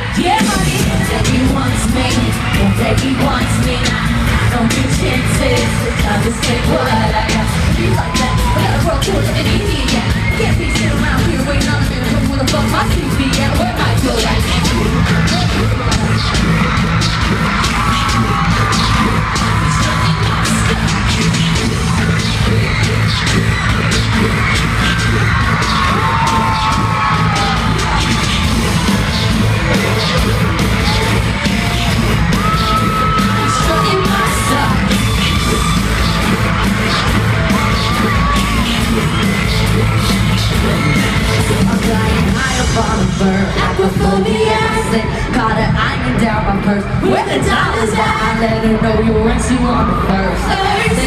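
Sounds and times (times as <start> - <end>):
crowd yelling and screaming: 0.0 - 51.0
live pop music with heavy bass: 0.0 - 51.0.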